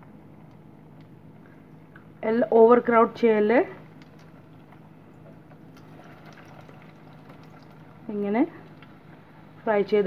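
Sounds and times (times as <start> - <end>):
hot oil sizzling and bubbling: 4.0 - 9.6.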